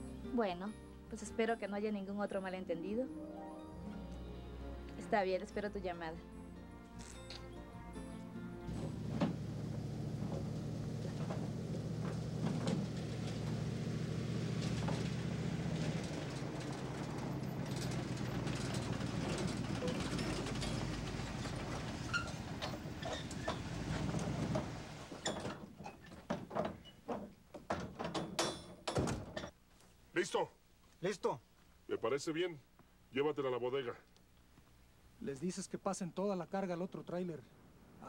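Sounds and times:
sharp knocks and clunks: 0:08.7 - 0:13.7, 0:14.6 - 0:29.6
car engine running: 0:08.7 - 0:25.1.

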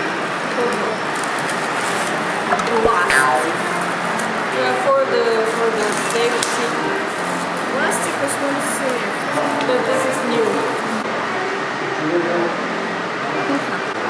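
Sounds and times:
restaurant background noise: 0:00.0 - 0:14.0
paper and plastic wrappers tearing: 0:01.1 - 0:04.4, 0:05.4 - 0:11.0
voices: 0:02.1 - 0:11.0.

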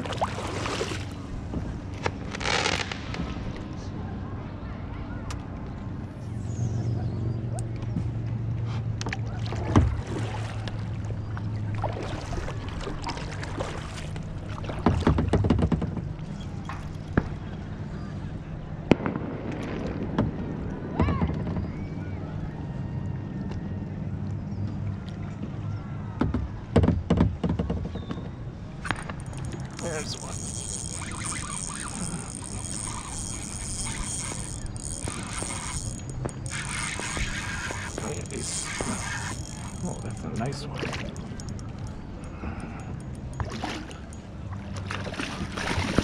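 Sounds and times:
kayak paddling knocks and clicks: 0:08.9 - 0:17.6, 0:26.2 - 0:46.0
steady low hum: 0:28.3 - 0:46.0.

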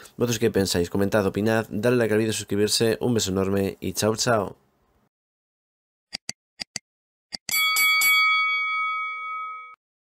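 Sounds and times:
bell chime ringing: 0:07.5 - 0:09.8.

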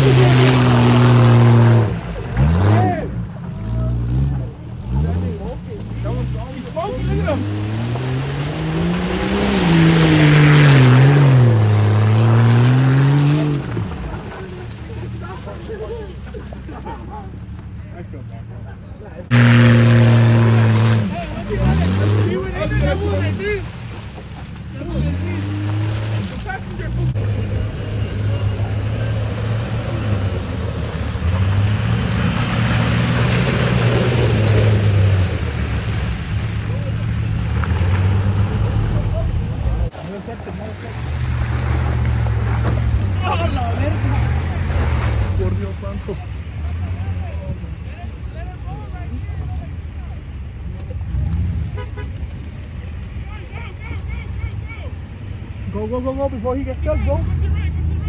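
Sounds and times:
off-road engines revving in mud: 0:00.0 - 0:58.0
people shouting and laughing: 0:13.9 - 0:19.3, 0:43.2 - 0:44.7, 0:53.2 - 0:55.0.

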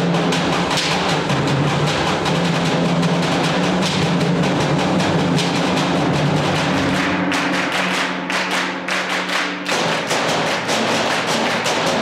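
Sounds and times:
steady percussion beat: 0:00.0 - 0:12.0.

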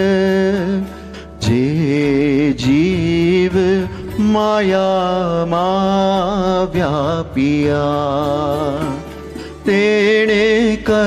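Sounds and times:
man singing a hymn: 0:00.0 - 0:11.0.

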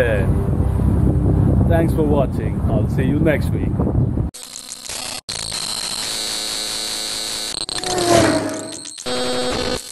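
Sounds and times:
harsh digital static: 0:04.4 - 0:09.9.

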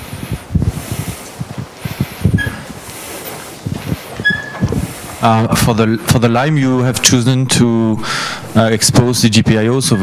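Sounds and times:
microphone handling thumps: 0:00.0 - 0:06.3
faint squeak: 0:02.4 - 0:02.6, 0:04.2 - 0:04.7.

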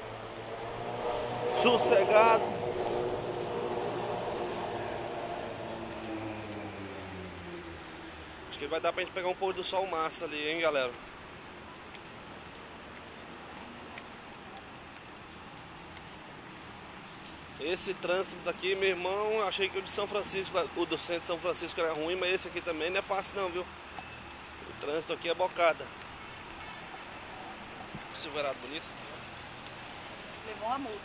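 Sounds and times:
city street traffic hiss: 0:00.0 - 0:31.0
faint ticks: 0:10.5 - 0:17.5.

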